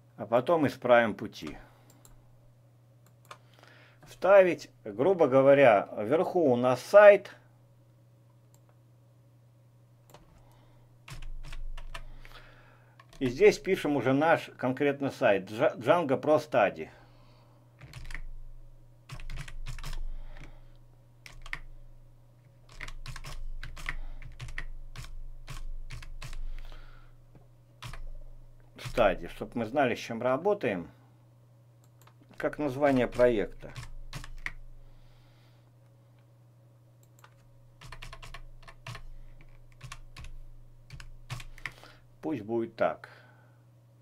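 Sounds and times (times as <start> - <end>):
low steady hum: 0.0 - 44.0
keyboard typing: 11.1 - 12.1, 13.0 - 13.5, 17.8 - 18.3, 19.1 - 20.5, 21.2 - 21.7, 22.6 - 26.7, 27.8 - 28.2, 32.8 - 34.6, 37.0 - 41.9.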